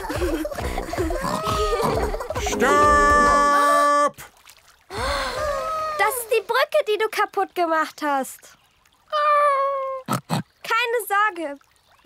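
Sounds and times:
cartoon voice dismayed ohh: 1.3 - 4.2.

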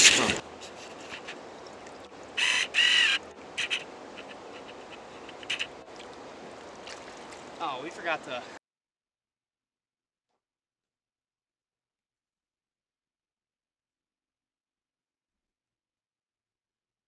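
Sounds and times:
river water flowing: 0.0 - 8.6.

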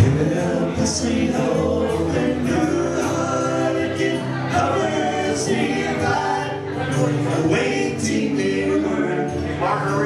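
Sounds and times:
acoustic and electric guitars: 0.0 - 10.0
men singing in harmony: 0.0 - 10.0.

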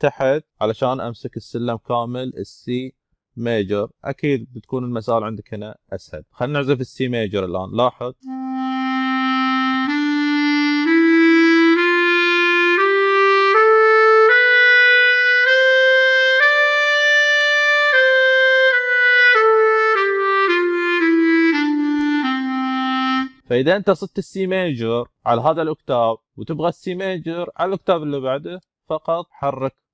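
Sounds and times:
clarinet playing a scale: 8.2 - 23.5.

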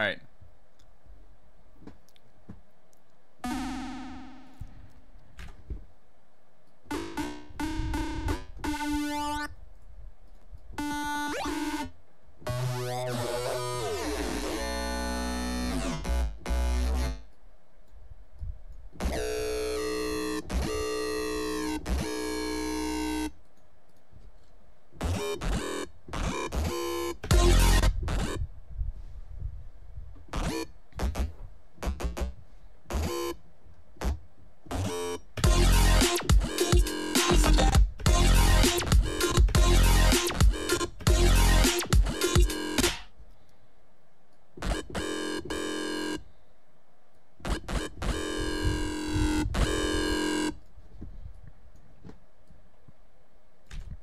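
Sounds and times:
synthesizer music: 3.4 - 4.7, 6.9 - 9.5, 10.8 - 11.9, 12.5 - 17.2, 25.1 - 28.4, 34.9 - 43.0.

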